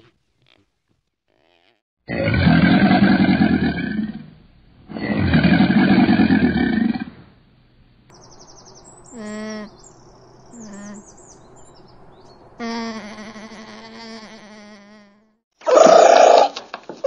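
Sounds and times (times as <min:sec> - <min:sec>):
alligator bellowing: 0:02.1 - 0:07.4, 0:15.6 - 0:16.5.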